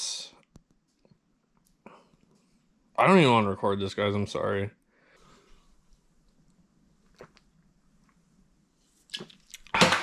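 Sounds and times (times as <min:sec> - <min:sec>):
man gulping a drink: 0:07.0 - 0:07.7.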